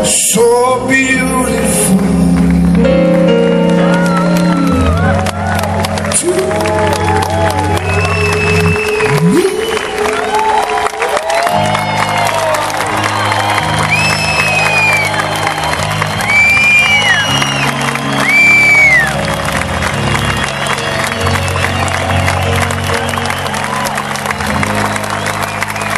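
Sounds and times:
live band holding chords: 0.0s - 25.9s
audience applauding and cheering: 1.1s - 25.9s
piercing whistles from crowd: 7.3s - 10.4s, 13.0s - 19.2s, 20.0s - 23.8s, 24.9s - 25.9s.

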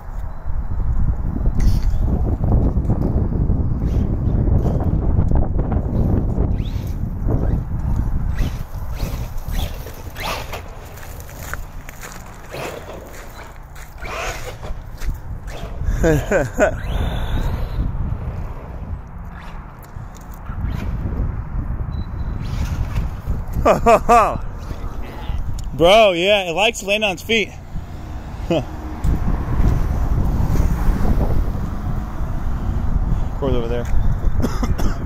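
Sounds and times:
wind rumble on microphone: 0.0s - 35.0s
electric toy truck motor whirring: 6.5s - 11.4s, 12.3s - 21.1s
man laughing: 15.8s - 17.4s, 23.5s - 25.3s, 28.4s - 28.8s.

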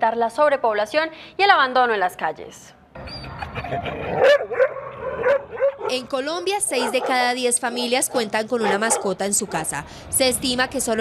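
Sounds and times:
dogs barking and yelping: 3.0s - 9.8s.

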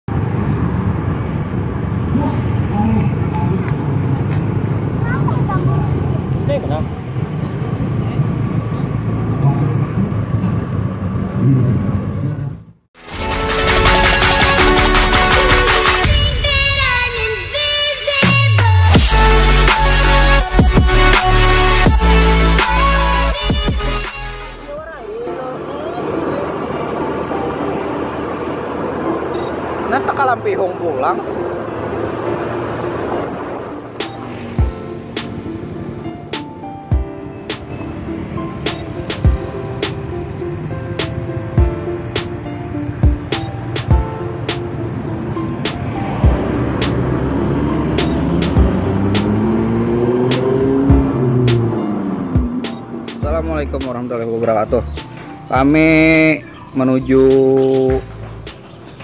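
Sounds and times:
vehicle road noise: 0.0s - 59.0s
wind: 0.1s - 14.7s, 15.8s - 59.0s.

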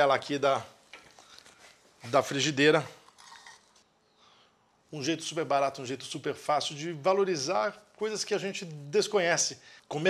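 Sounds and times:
soft handling noises: 0.7s - 2.3s.

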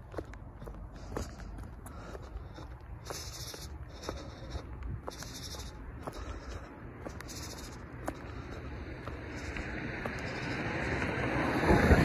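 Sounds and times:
sneaker footsteps on concrete: 0.0s - 11.1s
high shoe squeak: 3.0s - 5.8s.

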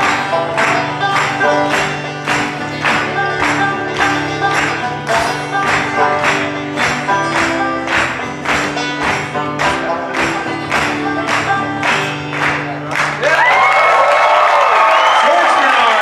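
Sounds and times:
acoustic guitar and banjo: 0.0s - 13.2s
percussion beat: 0.0s - 13.2s
audience applause and cheering: 0.0s - 16.0s.

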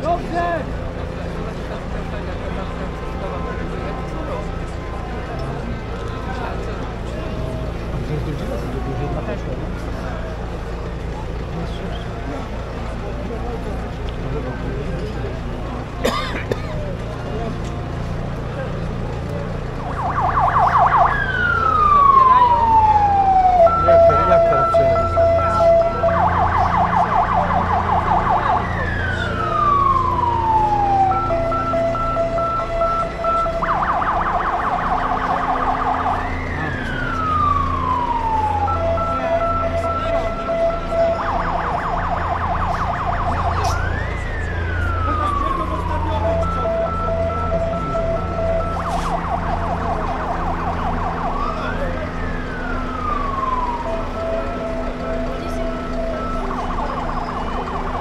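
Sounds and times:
siren wailing and warbling: 19.8s - 58.0s.

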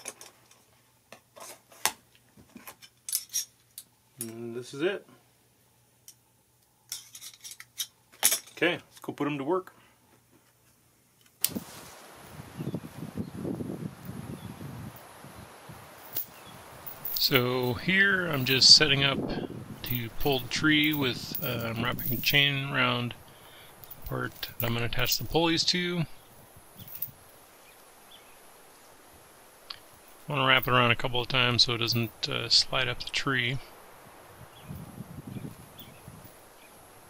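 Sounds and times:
rustling and crunching branches: 11.4s - 37.0s.

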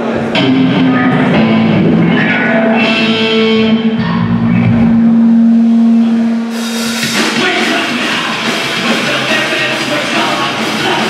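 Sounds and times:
distorted electric guitars: 0.0s - 11.0s
drums: 0.0s - 11.0s
sustained amplified guitar note: 0.3s - 7.5s.

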